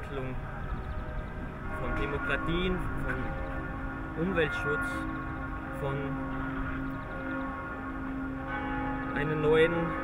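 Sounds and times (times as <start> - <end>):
ambient music with bell-like tones: 0.0 - 10.0.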